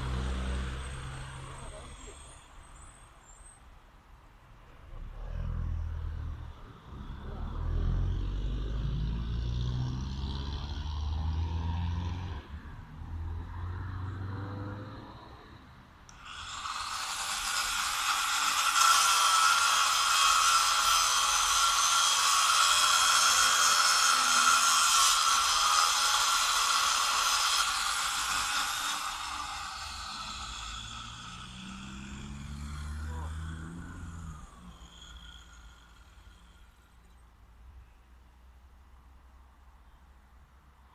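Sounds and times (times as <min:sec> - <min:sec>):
angle grinder cutting metal: 0:16.1 - 0:37.2.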